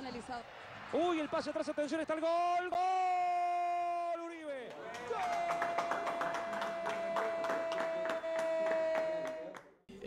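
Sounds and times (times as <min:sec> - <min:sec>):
people clapping: 0:04.6 - 0:09.9.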